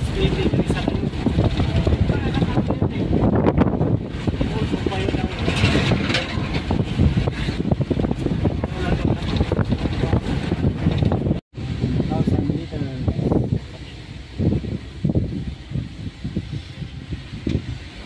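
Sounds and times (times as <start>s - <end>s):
car road and engine rumble: 0.0s - 18.0s
wind buffeting microphone: 0.0s - 18.0s.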